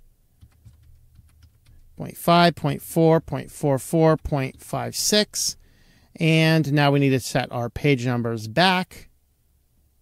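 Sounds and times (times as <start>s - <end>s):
low steady hum: 0.0s - 10.0s
keyboard keystrokes: 0.4s - 1.9s.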